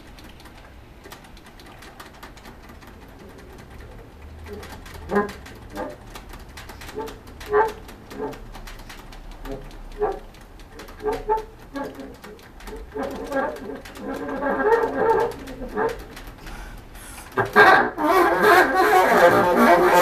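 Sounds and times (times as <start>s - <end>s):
small sharp clicks: 0.0s - 17.6s.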